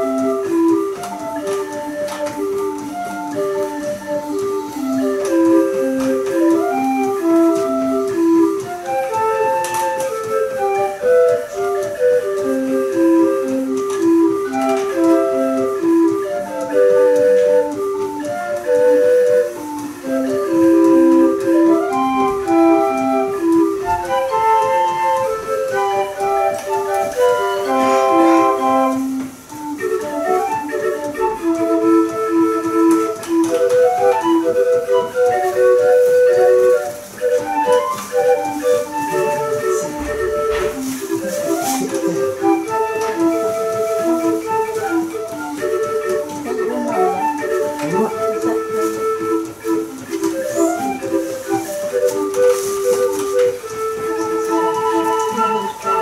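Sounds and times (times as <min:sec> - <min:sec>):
mechanical organ playing tune: 0:00.0 - 0:56.0.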